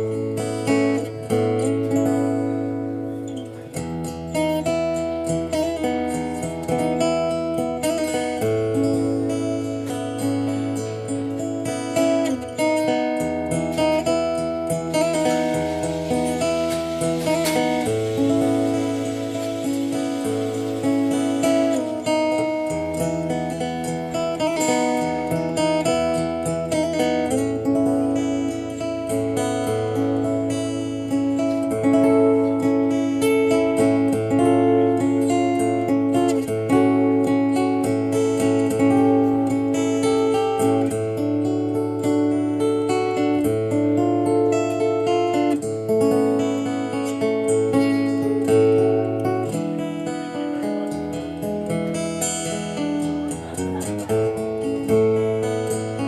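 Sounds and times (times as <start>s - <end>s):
acoustic guitar chords: 0.0s - 56.0s.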